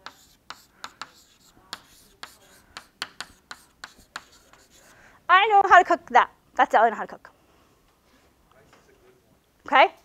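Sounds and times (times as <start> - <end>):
pen tapping while handwriting: 0.0 - 4.8
faint pen scratching: 0.0 - 5.0.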